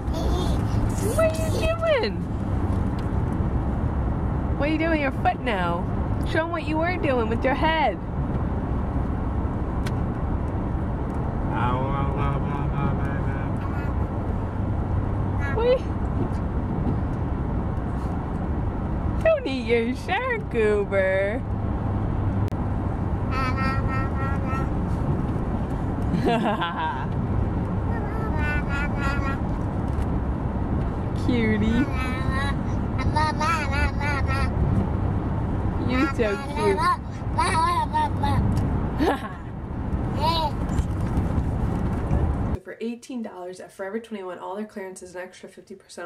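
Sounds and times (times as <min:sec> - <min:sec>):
car road noise rumble: 0:00.0 - 0:42.6
baby babbling: 0:00.1 - 0:01.6, 0:23.3 - 0:24.7, 0:27.9 - 0:29.4, 0:31.7 - 0:34.5, 0:35.9 - 0:38.4.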